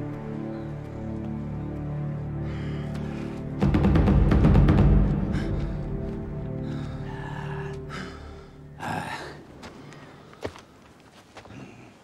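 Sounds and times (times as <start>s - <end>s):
low orchestral music: 0.0s - 9.6s.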